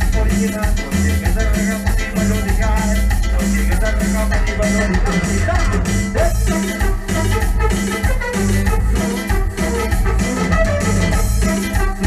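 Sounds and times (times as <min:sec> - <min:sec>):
cumbia band playing live: 0:00.0 - 0:12.0
electric bass: 0:00.0 - 0:12.0
keyboards: 0:00.0 - 0:12.0
steady percussion beat: 0:00.0 - 0:12.0.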